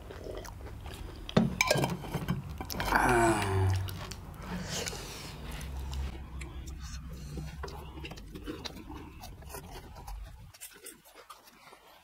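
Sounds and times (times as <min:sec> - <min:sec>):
people chewing: 0:00.0 - 0:12.0.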